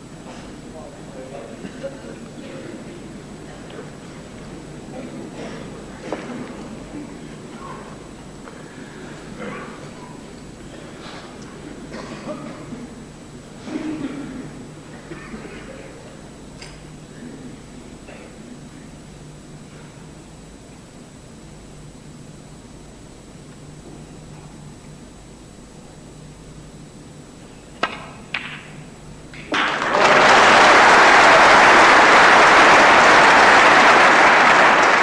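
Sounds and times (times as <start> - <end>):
audience applause: 29.4 - 35.0.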